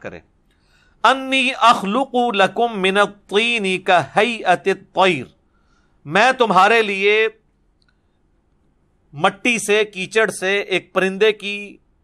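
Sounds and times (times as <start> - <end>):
man's voice: 0.0 - 0.2, 1.0 - 5.3, 6.1 - 7.3, 9.2 - 11.7.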